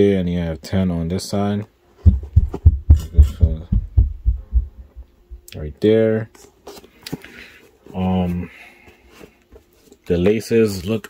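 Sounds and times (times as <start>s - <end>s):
sneaker handling thumps: 2.0s - 4.8s.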